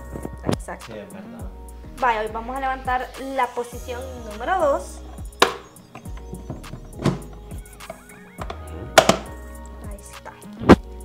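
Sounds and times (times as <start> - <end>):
hard plastic knocks and clunks: 5.2 - 9.3.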